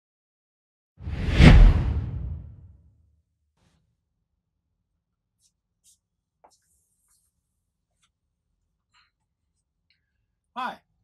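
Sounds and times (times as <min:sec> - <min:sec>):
swooshing whoosh: 0:01.0 - 0:02.6
deep low boom: 0:01.1 - 0:02.5.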